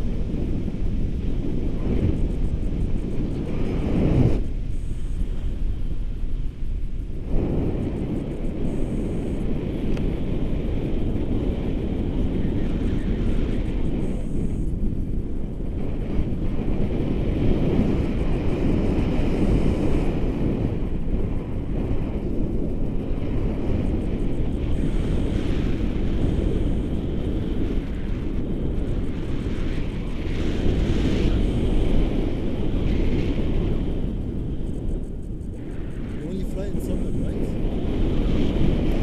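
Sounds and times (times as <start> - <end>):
wind rushing over microphone: 0.0 - 39.0.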